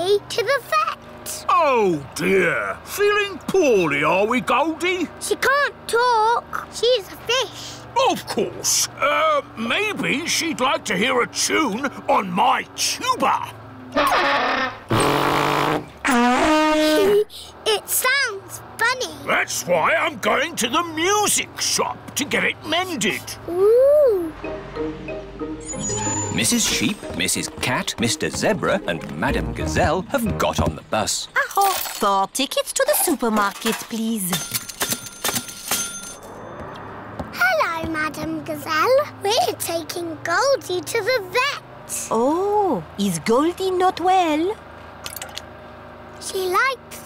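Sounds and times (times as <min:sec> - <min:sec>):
tuba rasping and sliding note: 0:14.0 - 0:17.2
ticket machine clicking: 0:33.4 - 0:36.2
bus engine running: 0:36.2 - 0:47.0.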